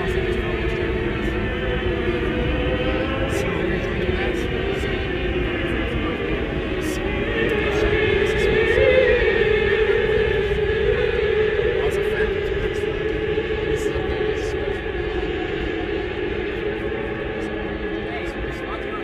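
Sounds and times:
car engine drone in cabin: 0:00.0 - 0:19.0.

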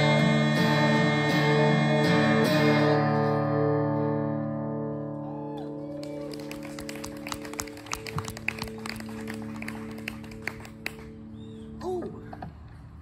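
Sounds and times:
people clapping: 0:05.6 - 0:11.2.

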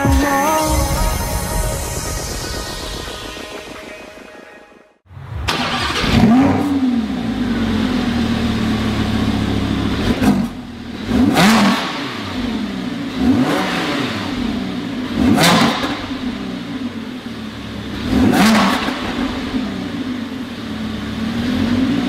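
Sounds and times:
sports car engine revving: 0:05.5 - 0:22.0.

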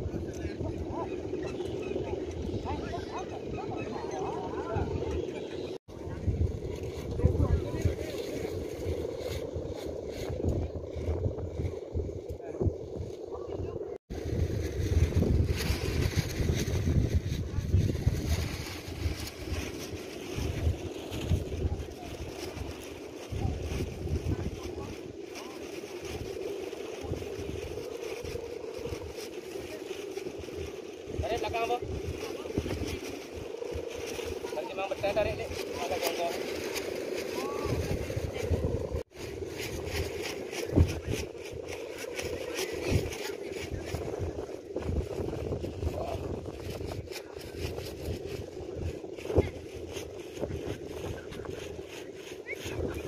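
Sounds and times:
kite hummers droning: 0:00.0 - 0:53.0
wind buffeting microphone: 0:00.0 - 0:53.0.

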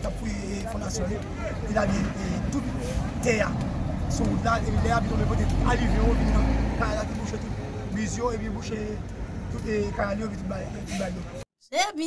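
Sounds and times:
low engine rumble: 0:00.0 - 0:11.4
man speaking: 0:00.0 - 0:11.4.

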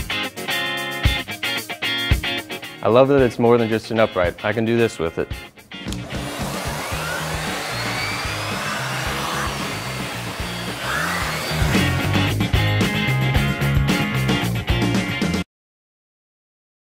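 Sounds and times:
vacuum cleaner motor hiss: 0:06.0 - 0:12.1
music with bass beat: 0:09.7 - 0:15.4.

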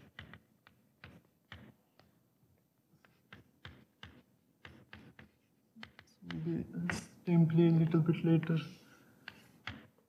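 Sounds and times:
chalk tapping and scraping on chalkboard: 0:00.0 - 0:02.2, 0:02.9 - 0:10.0.

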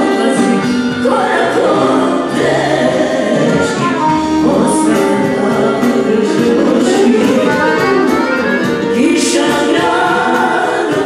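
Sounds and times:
accordion: 0:00.0 - 0:11.0
two women singing: 0:00.0 - 0:11.0
violin: 0:00.0 - 0:11.0.

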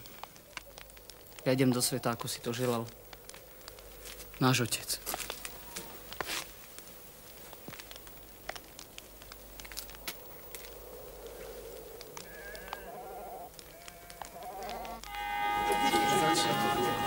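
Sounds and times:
rustling: 0:00.0 - 0:17.0
quiet clicks: 0:02.2 - 0:04.4, 0:07.5 - 0:15.2
sheep bleating faintly: 0:12.2 - 0:17.0.

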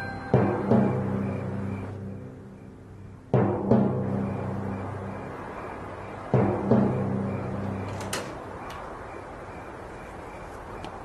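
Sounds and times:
deep drum strikes ringing: 0:00.0 - 0:08.1.

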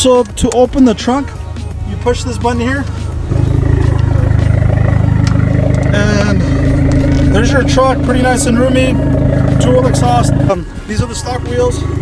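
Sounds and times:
car engine idling: 0:01.4 - 0:12.0.

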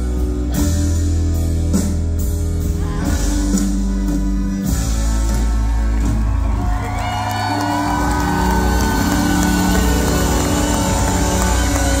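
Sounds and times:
live band playing: 0:00.0 - 0:12.0
crowd cheering and whooping: 0:05.2 - 0:12.0.

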